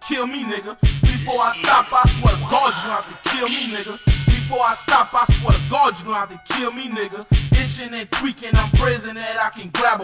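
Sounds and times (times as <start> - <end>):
rapping over a beat: 0.0 - 10.0.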